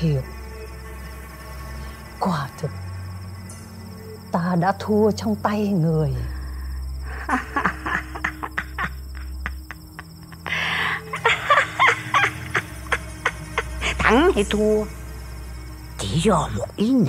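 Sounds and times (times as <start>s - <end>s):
crickets chirring: 0.0s - 17.0s
low sustained drone: 0.0s - 17.0s.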